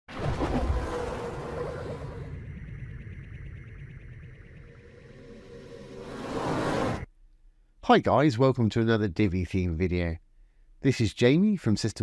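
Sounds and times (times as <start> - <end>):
synth swell: 1.9 - 7.1.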